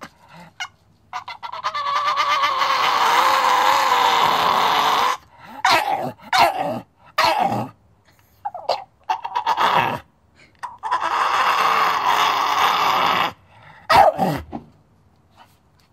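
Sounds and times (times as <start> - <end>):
dog vocal calls: 8.4 - 14.4.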